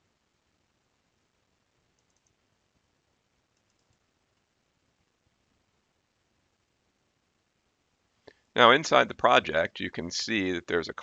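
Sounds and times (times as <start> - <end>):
faint computer mouse clicks: 2.0 - 2.4, 3.5 - 4.5.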